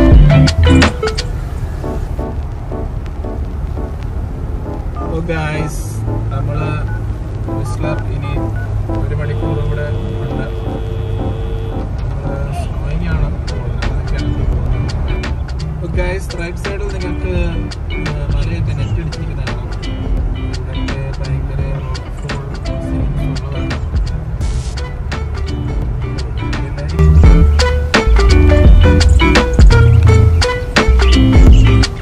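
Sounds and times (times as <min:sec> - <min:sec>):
music with singing voice: 0:00.0 - 0:03.5, 0:13.1 - 0:32.0
car driving on wet road: 0:00.0 - 0:32.0.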